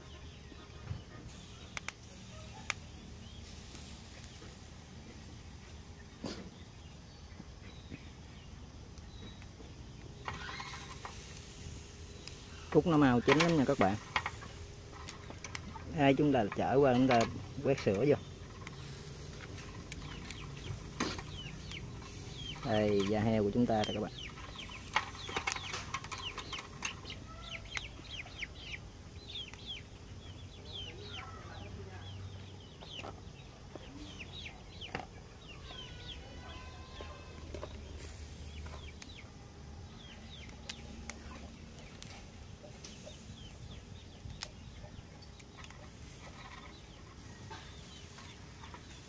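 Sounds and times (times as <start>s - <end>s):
birds chirping: 0.0s - 49.0s.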